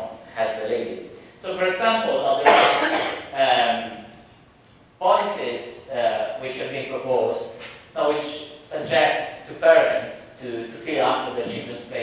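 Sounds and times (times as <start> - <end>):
man lecturing: 0.0 - 4.2, 5.0 - 12.0
cough: 2.4 - 3.3.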